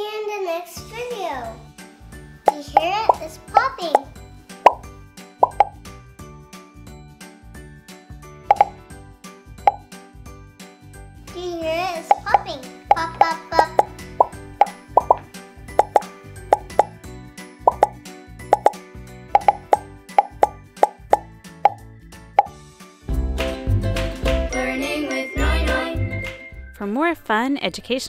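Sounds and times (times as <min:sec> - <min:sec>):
light children's music: 0:00.0 - 0:28.0
fidget toy bubbles popping: 0:02.5 - 0:03.3, 0:03.9 - 0:05.8, 0:08.5 - 0:08.8, 0:12.0 - 0:17.0, 0:17.7 - 0:18.8, 0:19.4 - 0:21.8.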